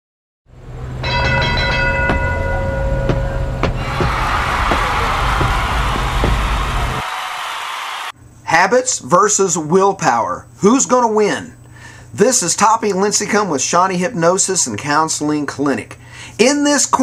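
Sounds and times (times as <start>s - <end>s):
bell-like ringing tone: 1.0s - 3.6s
steady rushing noise: 3.5s - 7.1s.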